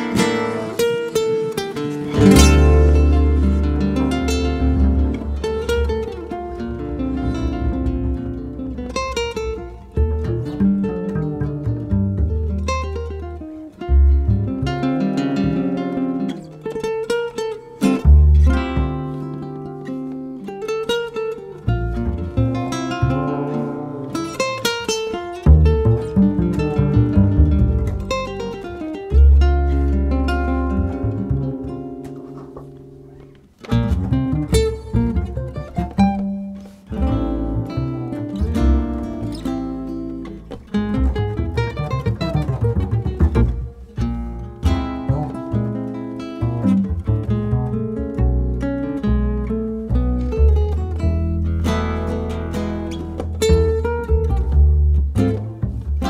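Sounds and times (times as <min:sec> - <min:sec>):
acoustic guitar music: 0:00.0 - 0:56.0.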